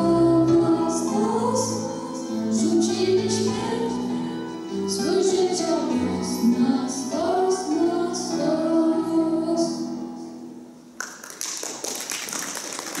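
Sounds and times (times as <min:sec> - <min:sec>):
audience applause: 0:11.0 - 0:13.0.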